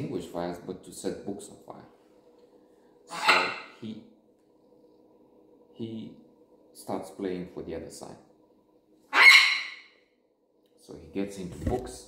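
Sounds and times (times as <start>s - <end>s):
macaw squawking: 3.1s - 3.8s, 9.1s - 9.9s.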